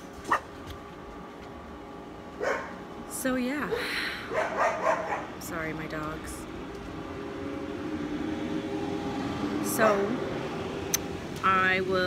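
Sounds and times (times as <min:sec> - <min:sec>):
dog barking: 0:00.3 - 0:00.5, 0:02.4 - 0:02.8, 0:04.3 - 0:05.3.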